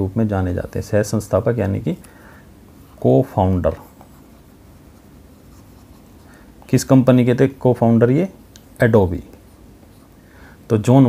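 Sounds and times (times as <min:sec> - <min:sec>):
faint stylus scratching on tablet: 0:03.7 - 0:06.8.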